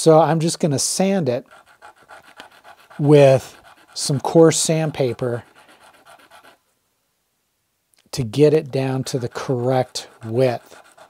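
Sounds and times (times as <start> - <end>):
sanding on coarse sandpaper: 1.0 - 6.6, 8.8 - 11.0.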